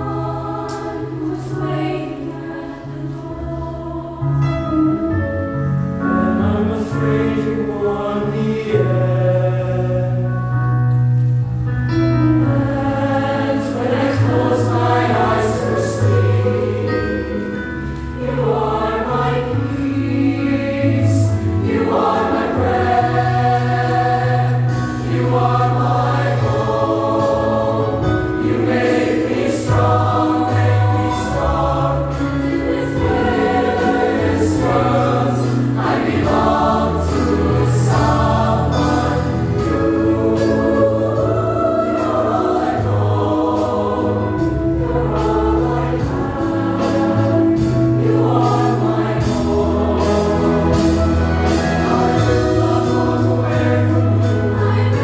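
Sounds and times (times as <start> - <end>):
choir singing in harmony: 0.0 - 55.0.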